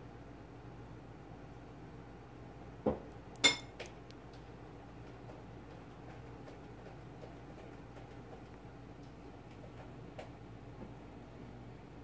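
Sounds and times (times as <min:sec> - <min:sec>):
low steady room hum: 0:00.0 - 0:12.0.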